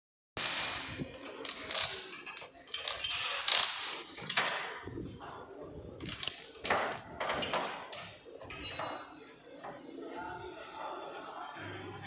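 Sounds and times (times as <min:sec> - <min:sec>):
steel chains rattling and clinking: 0:00.4 - 0:04.8, 0:05.8 - 0:09.1.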